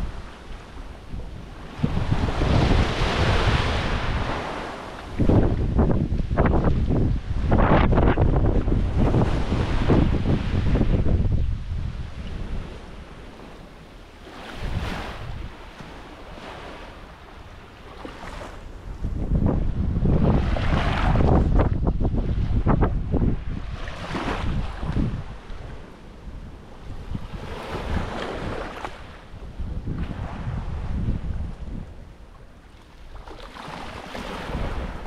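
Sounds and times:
wind buffeting microphone: 0:00.0 - 0:13.6, 0:14.2 - 0:35.0
small waves on sandy shore: 0:00.0 - 0:35.0.

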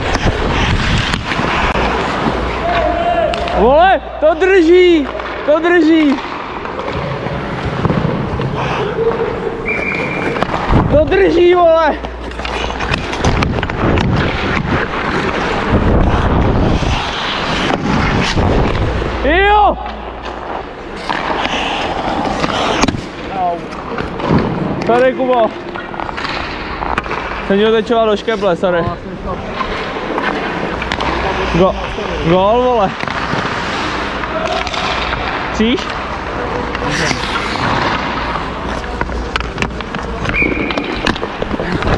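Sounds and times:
ice skates scraping on ice: 0:00.0 - 0:02.9, 0:06.7 - 0:19.3, 0:20.1 - 0:25.0, 0:25.7 - 0:41.9.

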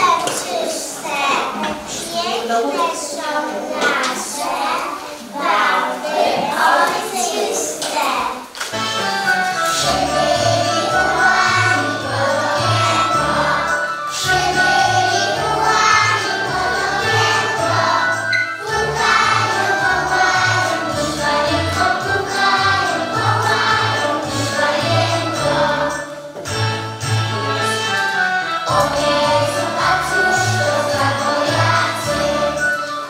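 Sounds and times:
children singing: 0:00.0 - 0:26.5, 0:27.2 - 0:33.0.

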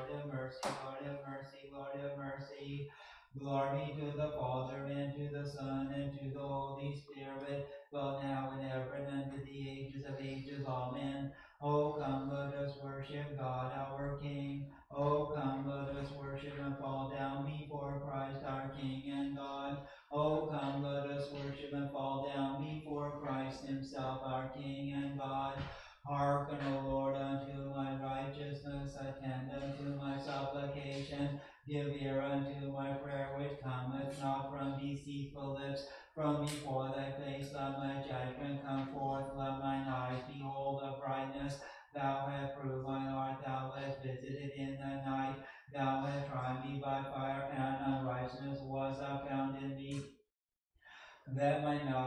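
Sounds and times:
man chanting on one note: 0:00.0 - 0:50.0, 0:50.9 - 0:52.0.

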